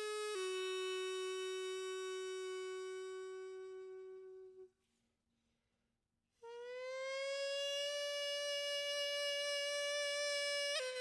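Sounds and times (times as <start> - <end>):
double-reed pipe long note: 0.0 - 4.7.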